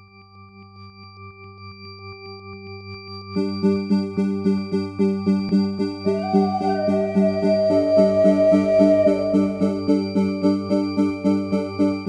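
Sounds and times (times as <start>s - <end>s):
pulsing synthesized drone: 6.1s - 11.4s.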